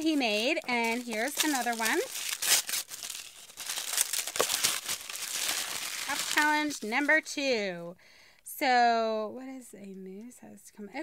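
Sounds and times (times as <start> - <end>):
packaging crinkling: 0.0 - 7.2.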